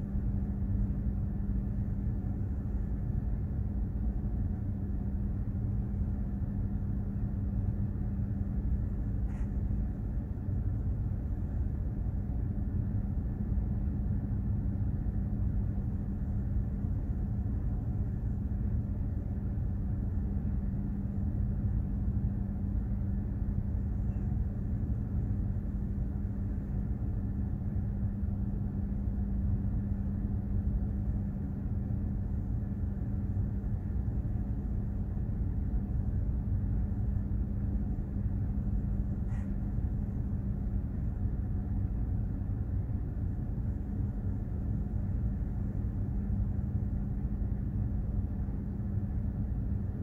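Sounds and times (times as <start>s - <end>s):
constant hum: 0.0s - 50.0s
ship machinery rumble: 0.0s - 50.0s.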